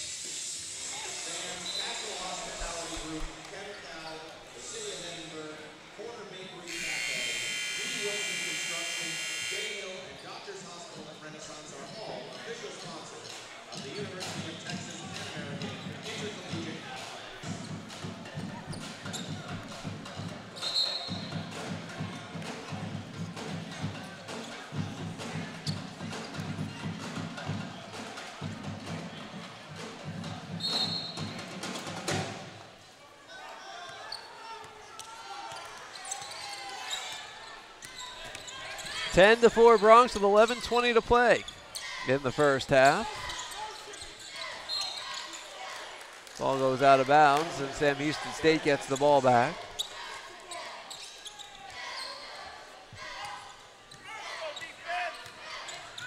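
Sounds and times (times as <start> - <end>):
crowd chatter: 0.0 - 56.0
short high-pitched tones: 6.7 - 9.8
arena buzzer: 6.7 - 10.0.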